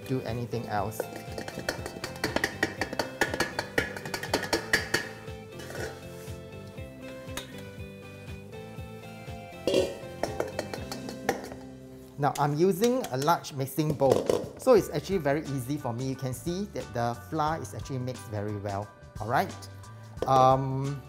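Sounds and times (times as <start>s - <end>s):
background music: 0.0s - 21.0s
sieve rattling against metal bowl: 1.0s - 6.0s, 9.6s - 11.6s.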